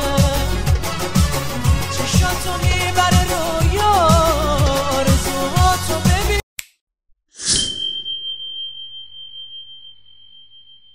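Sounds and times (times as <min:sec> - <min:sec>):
high ringing chime tone: 0:07.4 - 0:10.9.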